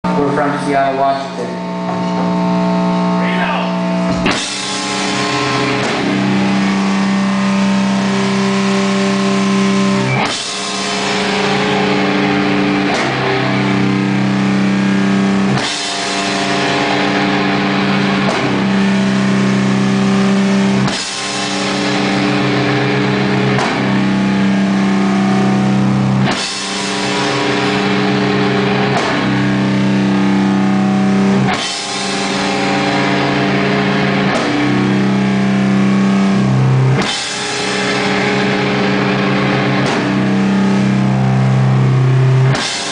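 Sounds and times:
distorted electric guitar chord: 0:00.1 - 0:42.9
higher guitar note: 0:00.1 - 0:42.9.

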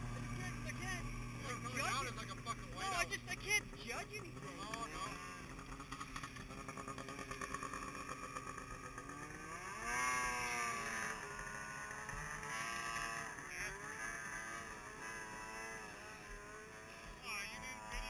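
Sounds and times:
snowmobile engine revving: 0:00.0 - 0:18.0.

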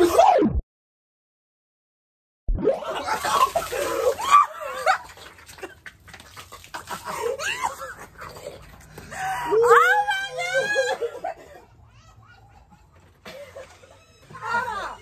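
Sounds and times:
woman shrieking and laughing: 0:02.7 - 0:05.0, 0:07.0 - 0:08.1, 0:09.2 - 0:15.0.

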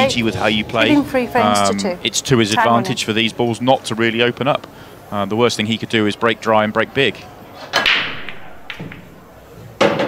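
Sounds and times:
pool balls clattering: 0:07.6 - 0:10.0
cue ball cracking into pool balls: 0:07.7 - 0:09.2, 0:09.8 - 0:10.0
pool ball knock: 0:07.8 - 0:10.0.

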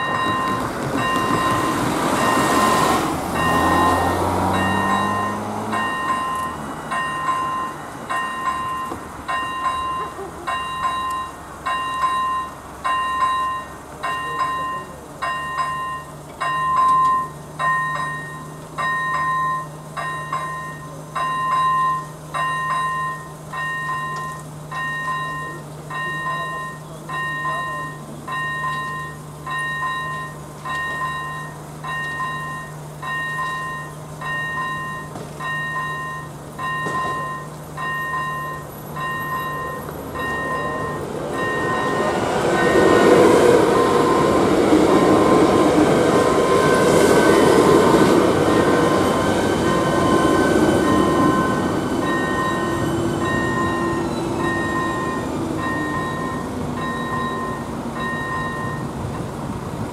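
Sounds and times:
level-crossing bell dinging: 0:00.0 - 0:59.2
passing train running noise: 0:00.0 - 0:59.9.

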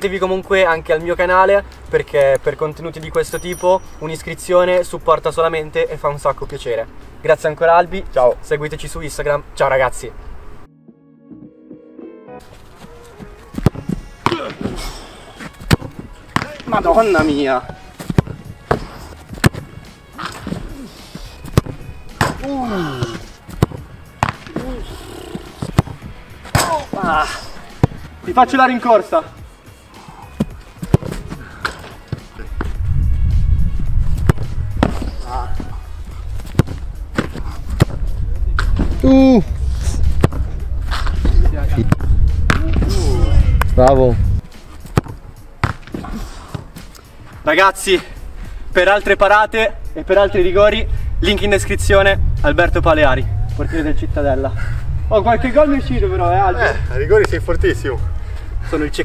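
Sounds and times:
background music: 0:00.0 - 0:09.6, 0:10.2 - 0:59.0
football thuds: 0:13.2 - 0:14.8, 0:15.4 - 0:20.7, 0:21.4 - 0:24.7, 0:25.6 - 0:28.2, 0:30.4 - 0:32.8, 0:34.0 - 0:39.1, 0:40.1 - 0:43.0, 0:44.8 - 0:46.8.

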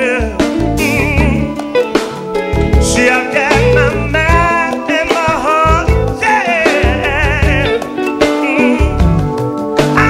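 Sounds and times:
man singing into microphone: 0:00.0 - 0:01.7, 0:02.8 - 0:09.2
live band playing: 0:00.0 - 0:10.0.

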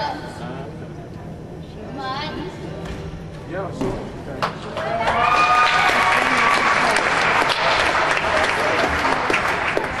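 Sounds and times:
audience applauding: 0:04.7 - 0:10.0.

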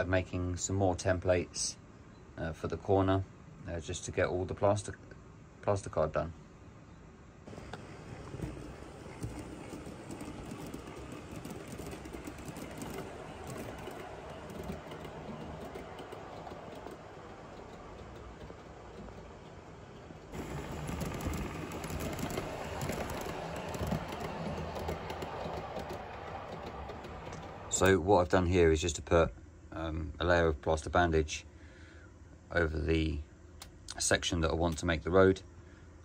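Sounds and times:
model trains running: 0:07.5 - 0:28.4.

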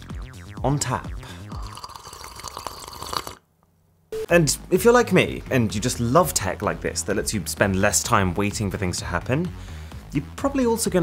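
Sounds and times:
sparkling water fizzing: 0:01.6 - 0:03.4.

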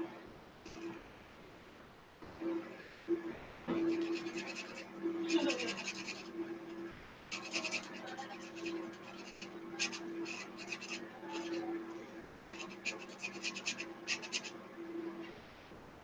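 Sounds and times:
low steady hum: 0:00.0 - 0:16.0
marker scratching on paper: 0:03.7 - 0:12.0, 0:12.6 - 0:14.6.

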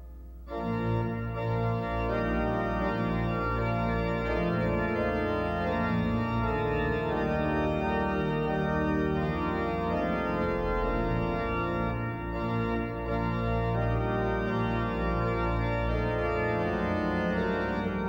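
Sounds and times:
pipe organ chords: 0:00.0 - 0:18.0.

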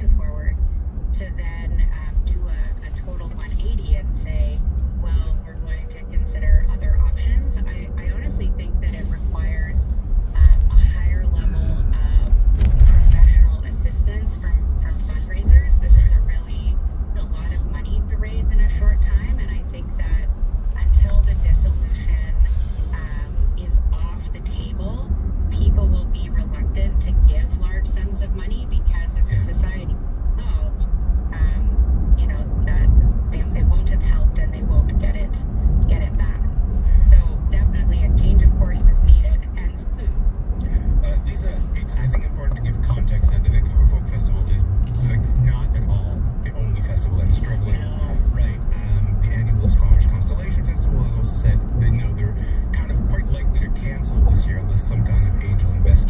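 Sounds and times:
car radio playing: 0:00.0 - 0:56.0
car road and engine rumble: 0:00.0 - 0:56.0.

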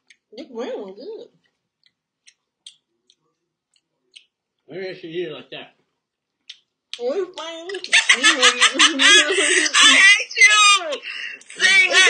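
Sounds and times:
person laughing loudly: 0:07.8 - 0:12.0.

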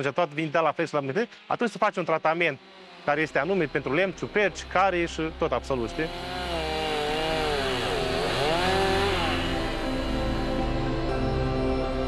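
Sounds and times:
chainsaws cutting logs: 0:02.3 - 0:04.5, 0:05.6 - 0:12.0.

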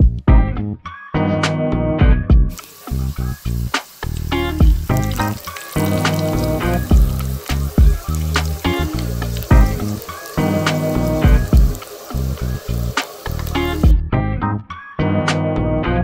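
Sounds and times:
music with plucked bass: 0:00.0 - 0:02.5, 0:13.8 - 0:16.0
oil sizzling in a frying pan: 0:02.5 - 0:14.0.

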